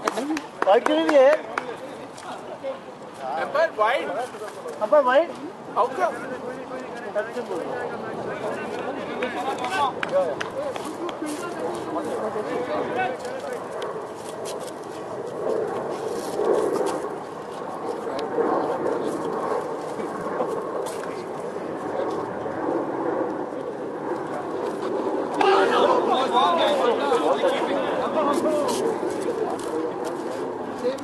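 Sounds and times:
people talking and calling out: 0.0 - 31.0.

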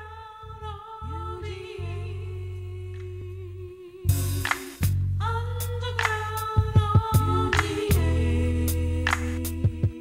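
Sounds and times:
deep sustained bass notes: 0.0 - 9.9
hummed vocal notes: 0.0 - 10.0.

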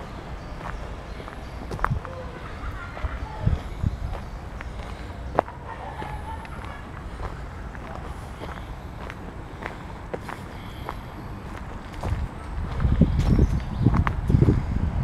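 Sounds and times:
footsteps on dirt path: 0.4 - 14.7
faint distant voice: 1.9 - 4.4, 5.4 - 8.7.

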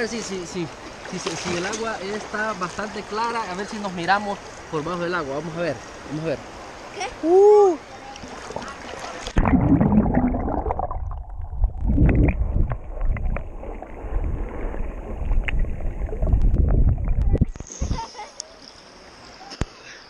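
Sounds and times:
open-air river water: 0.0 - 20.0
muffled underwater river rumbling: 8.2 - 18.0.

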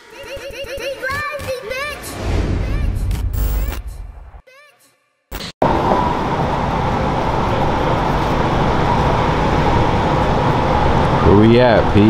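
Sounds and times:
traffic rumble and hiss: 5.6 - 12.0.

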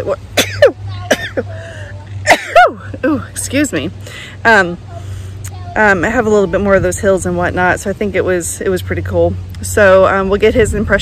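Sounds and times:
woman coughing: 0.4 - 2.8.

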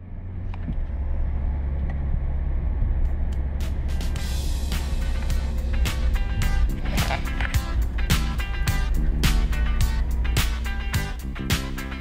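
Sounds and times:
car engine drone: 0.0 - 12.0
road noise inside car: 0.0 - 12.0.

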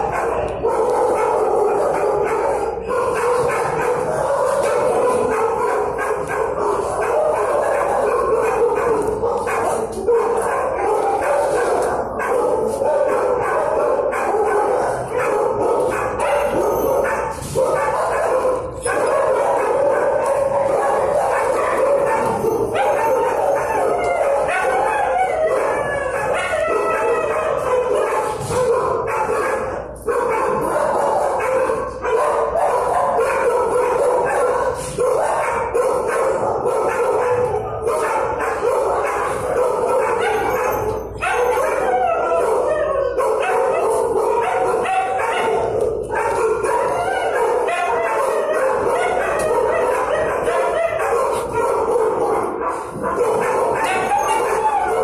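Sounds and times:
many dogs barking and howling: 0.0 - 55.0.

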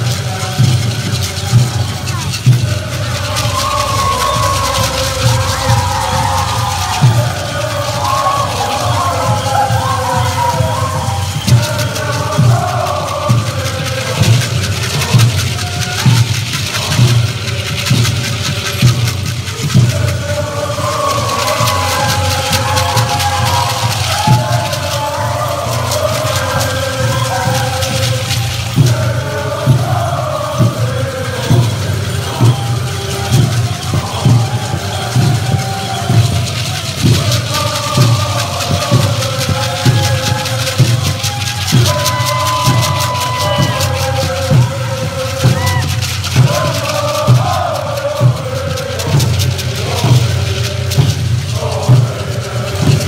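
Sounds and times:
chorus chanting: 0.0 - 53.0
steady drum beat: 0.0 - 53.0.

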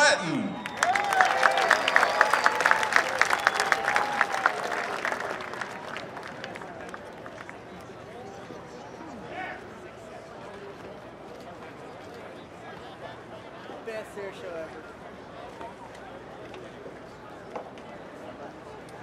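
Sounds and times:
crowd clapping and cheering: 0.0 - 7.9
murmur of voices: 2.9 - 19.0.

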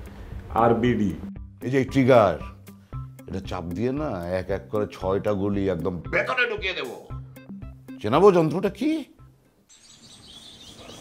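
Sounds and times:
small birds chirping: 9.7 - 11.0.

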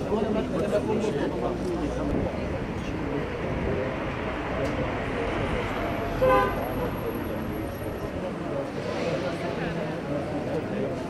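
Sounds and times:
crowd murmur: 0.0 - 11.0
car horn honk: 6.2 - 6.7.

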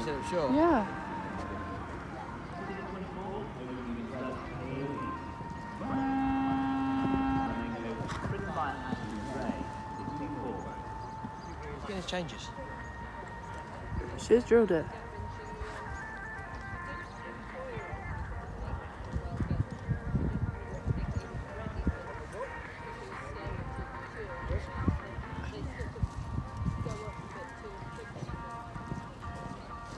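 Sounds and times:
distant voices: 0.0 - 29.9
horse hoofbeats on sand: 6.0 - 11.5.

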